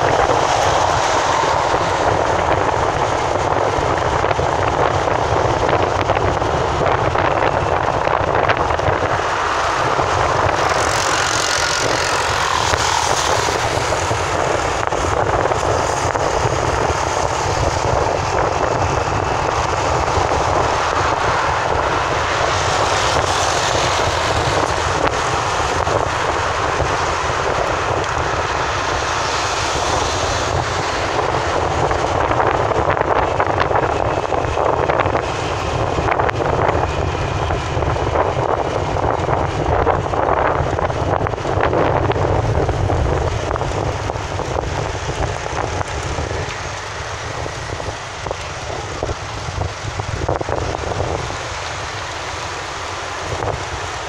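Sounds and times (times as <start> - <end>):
car road and wind noise: 0.0 - 54.0.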